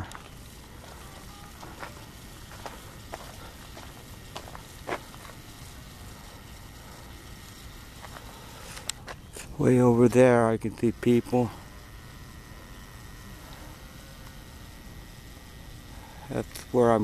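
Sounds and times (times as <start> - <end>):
faint steady hiss: 0.0 - 17.0.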